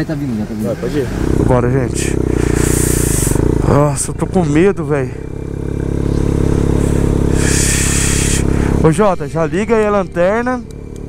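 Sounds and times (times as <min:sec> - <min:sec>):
motorcycle engine running: 0:00.8 - 0:11.0
brief hiss: 0:07.4 - 0:08.4.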